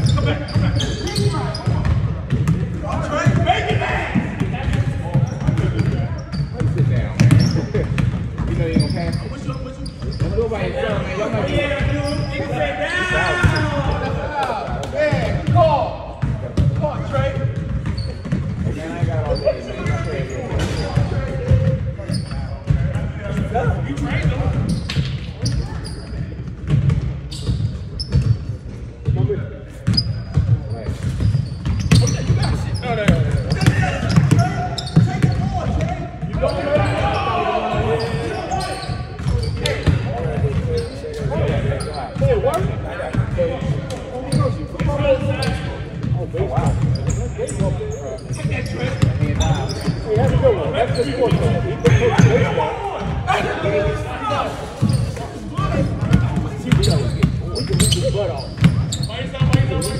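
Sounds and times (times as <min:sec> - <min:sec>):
basketballs bouncing on hardwood: 0:00.0 - 0:09.2, 0:14.7 - 0:20.0, 0:26.4 - 0:28.4, 0:29.0 - 0:38.3, 0:39.1 - 0:47.8, 0:48.5 - 0:53.2, 0:55.7 - 0:59.9
players chattering: 0:00.0 - 0:59.9.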